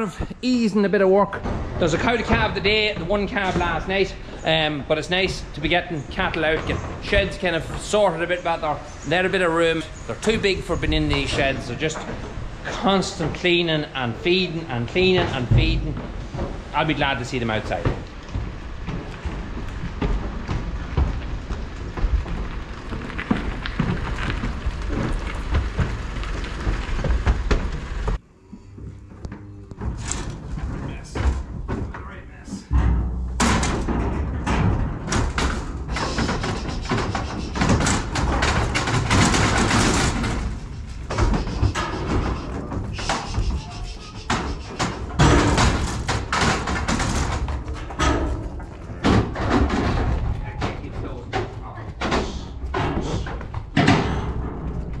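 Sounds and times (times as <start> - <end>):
thumps and clanks of steel gates: 1.1 - 28.2, 29.8 - 55.0
wind rumbling on microphone: 1.4 - 28.2.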